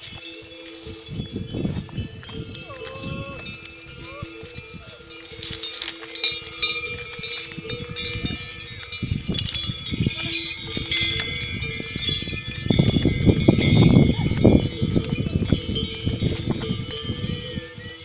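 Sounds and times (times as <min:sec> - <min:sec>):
bells ringing on pack animals: 0:00.0 - 0:18.0.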